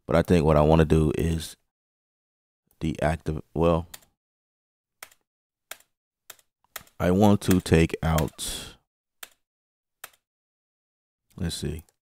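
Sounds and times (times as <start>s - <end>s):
faint mouse clicks: 10.0s - 10.2s.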